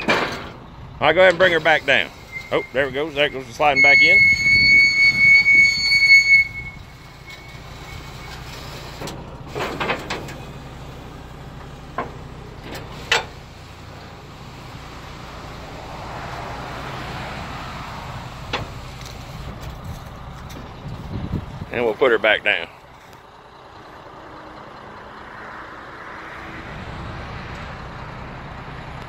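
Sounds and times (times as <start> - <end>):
hydraulic deck squealing: 0.0 - 15.2
truck engine humming: 0.0 - 29.0.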